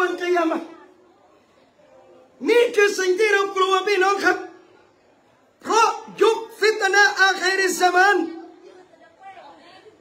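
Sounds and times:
man lecturing: 2.4 - 4.6, 5.6 - 8.5.

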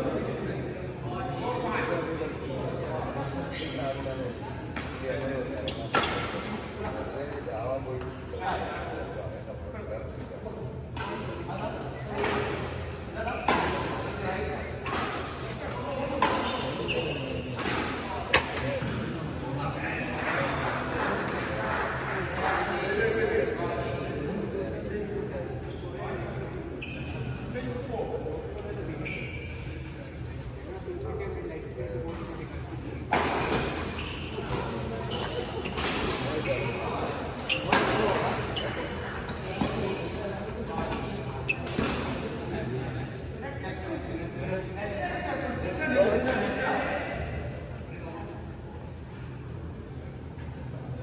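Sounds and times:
chatter of voices in a hall: 0.0 - 51.0
court shoes squeaking: 3.2 - 6.7, 11.0 - 14.1, 14.8 - 20.3, 25.6 - 27.8, 28.6 - 30.4, 32.0 - 42.3
shoe sole squeaking on court: 3.5 - 3.9, 13.2 - 13.7, 16.4 - 17.6, 26.8 - 27.3, 29.0 - 29.8, 33.9 - 41.9.

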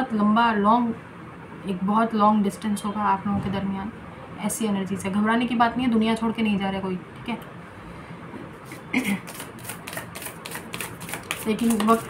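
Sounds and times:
cards being shuffled: 8.6 - 12.0.

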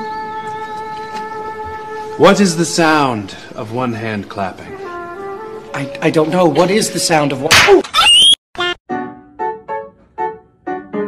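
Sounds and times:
piano-like keyboard melody: 8.6 - 11.0.

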